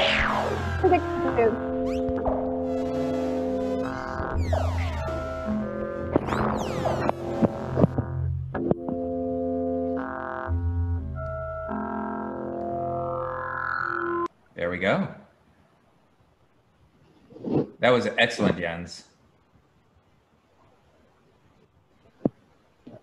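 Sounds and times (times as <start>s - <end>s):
electronic music held tones: 0.0s - 14.3s.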